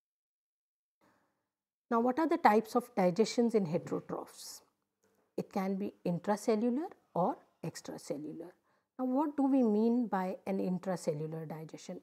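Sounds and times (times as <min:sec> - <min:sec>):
woman speaking: 0:01.9 - 0:04.7, 0:05.4 - 0:12.0
faint breath: 0:08.6 - 0:09.0.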